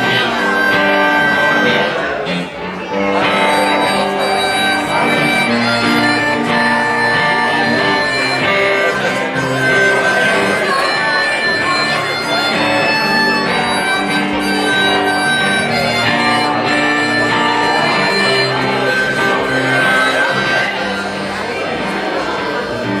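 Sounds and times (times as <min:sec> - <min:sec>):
harmonica playing: 0:00.0 - 0:23.0
strummed acoustic guitar: 0:00.0 - 0:23.0.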